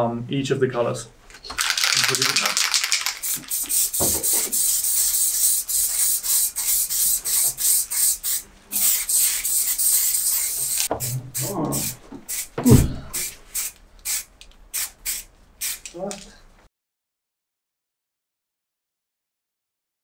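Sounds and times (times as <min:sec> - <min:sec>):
spray-paint cans hissing: 0:01.5 - 0:12.6, 0:13.2 - 0:16.0.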